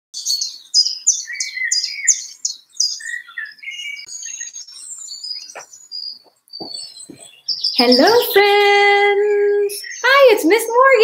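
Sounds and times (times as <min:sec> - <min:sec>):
short bird calls and trills: 0:00.2 - 0:08.3, 0:09.8 - 0:10.2
low bird warbling: 0:00.2 - 0:08.4.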